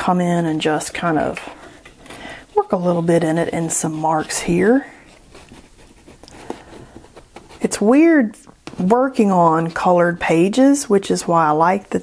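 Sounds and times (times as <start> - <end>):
crayon scratching on paper: 1.0 - 7.9.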